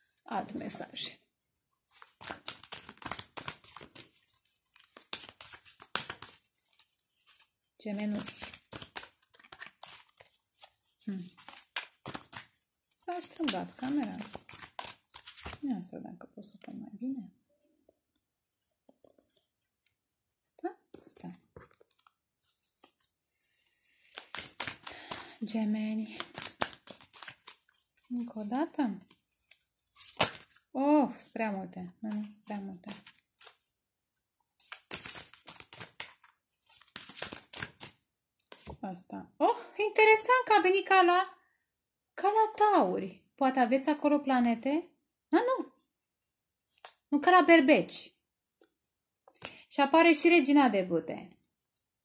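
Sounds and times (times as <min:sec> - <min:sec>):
cards being shuffled: 0:01.8 - 0:15.7, 0:20.9 - 0:23.2, 0:23.9 - 0:30.6, 0:32.1 - 0:33.7, 0:34.6 - 0:38.8, 0:49.2 - 0:49.6.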